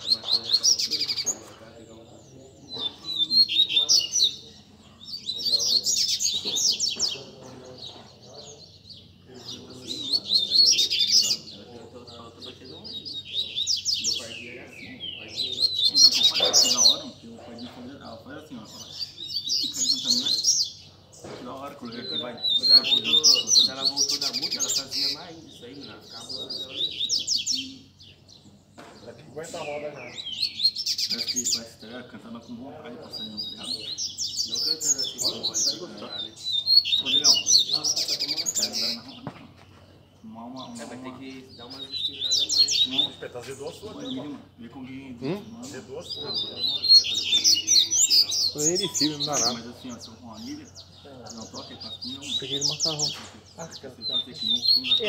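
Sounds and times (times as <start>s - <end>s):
birds singing high-pitched bursts: 0.0s - 17.3s, 18.0s - 21.2s, 21.8s - 28.7s, 29.3s - 39.2s, 40.0s - 55.0s.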